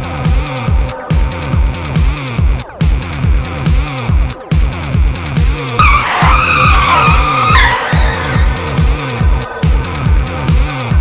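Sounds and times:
electronic dance music: 0.2 - 11.0
tyre squeal: 5.8 - 10.1.

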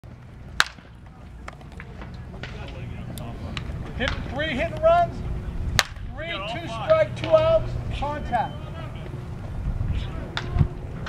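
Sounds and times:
wooden bat hitting ball: 0.6 - 2.8, 5.8 - 6.1, 10.3 - 10.6.

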